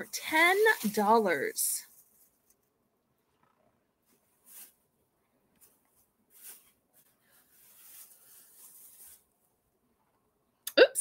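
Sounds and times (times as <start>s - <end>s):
woman speaking: 0.0s - 1.9s, 10.7s - 11.0s
plastic wrapping rustling: 0.0s - 2.7s, 4.0s - 4.9s, 5.5s - 9.4s.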